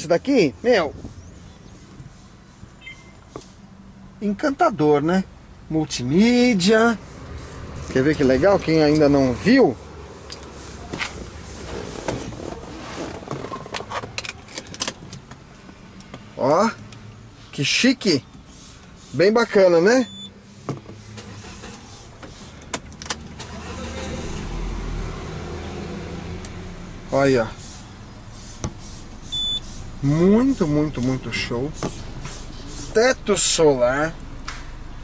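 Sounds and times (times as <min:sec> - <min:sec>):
short high electronic beep: 0:02.8 - 0:03.2, 0:29.3 - 0:29.6.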